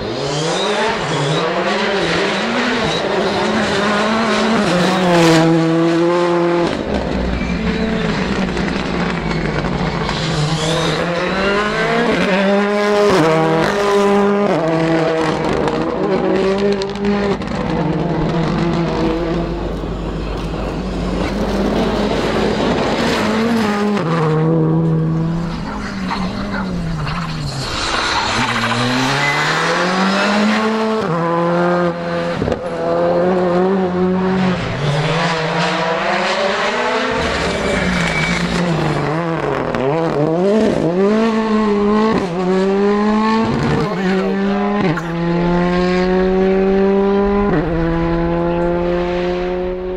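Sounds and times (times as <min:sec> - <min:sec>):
rally car engines revving: 0:00.0 - 0:49.9.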